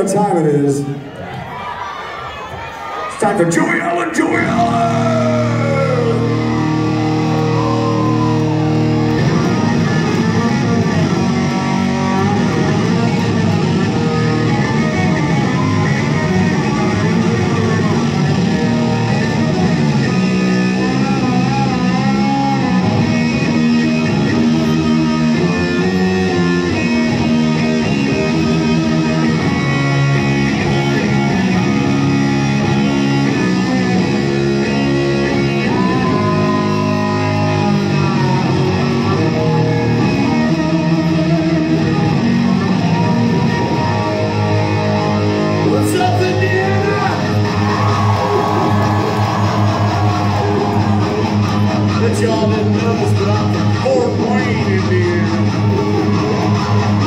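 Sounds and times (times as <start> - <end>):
electric guitar solo: 4.1 - 57.0.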